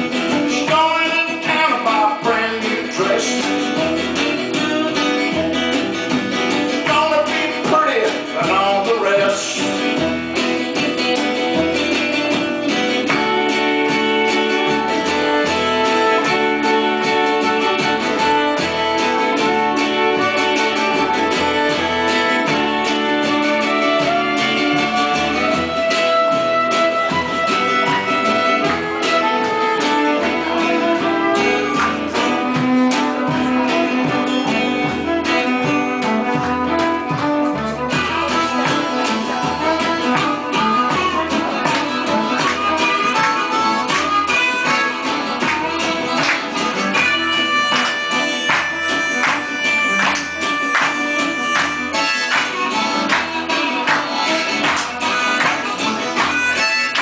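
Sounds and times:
acoustic guitar: 0.0 - 57.0
fiddle: 0.0 - 57.0
walking upright bass: 0.0 - 57.0.

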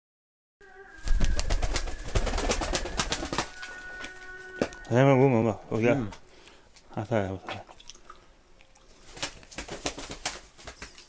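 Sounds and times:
pigeon wing claps: 1.0 - 3.5, 9.1 - 11.0.

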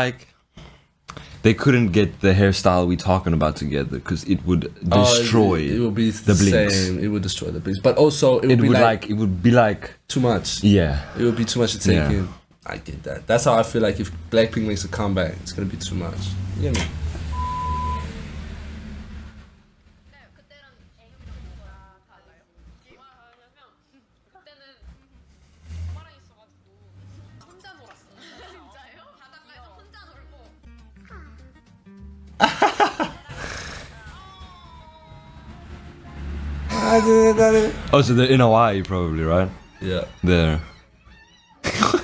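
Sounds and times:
background music: 1.2 - 18.8, 29.2 - 41.0
electronic beep: 17.3 - 18.2, 36.7 - 37.8
high wavering voice: 36.7 - 37.9.

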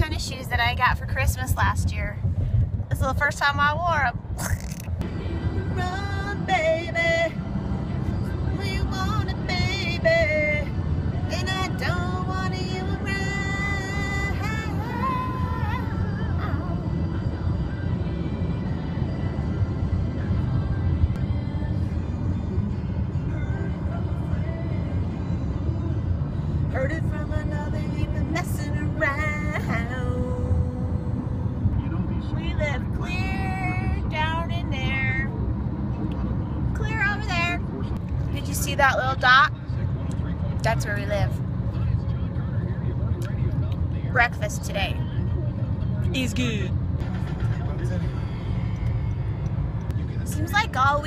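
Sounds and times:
song on car stereo: 0.0 - 4.2, 4.9 - 51.0
road and engine rumble in car: 0.0 - 51.0.

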